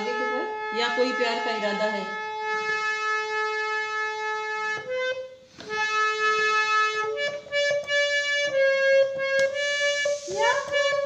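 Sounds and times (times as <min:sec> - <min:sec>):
harmonium notes: 0:00.0 - 0:11.0.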